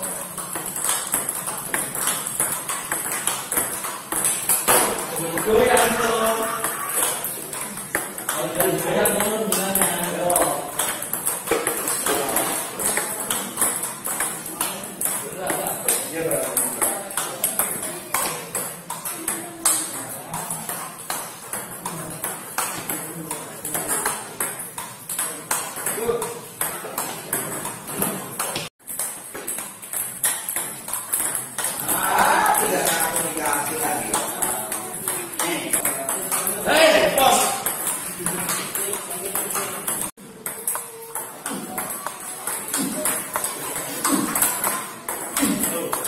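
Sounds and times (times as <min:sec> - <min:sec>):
table tennis balls clicking: 0:00.0 - 0:46.0.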